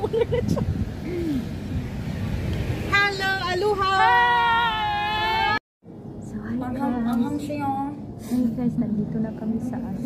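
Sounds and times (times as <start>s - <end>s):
van engine rumble and road noise: 0.0s - 10.0s.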